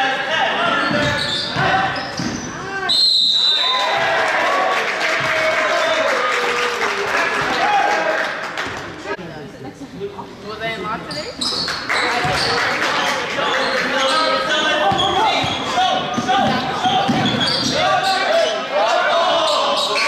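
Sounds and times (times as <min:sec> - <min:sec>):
players shouting: 0:13.4 - 0:20.0
basketball bouncing on wood floor: 0:16.2 - 0:17.4.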